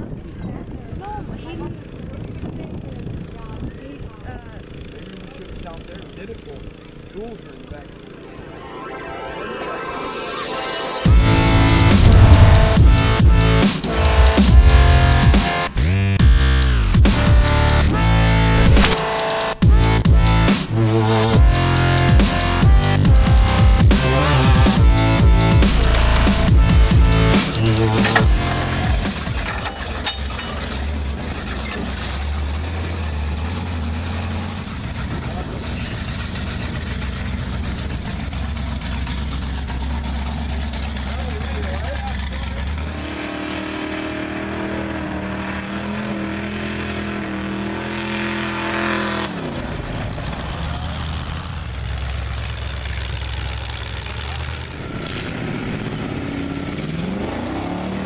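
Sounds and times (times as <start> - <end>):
truck engines revving: 6.4 - 58.0.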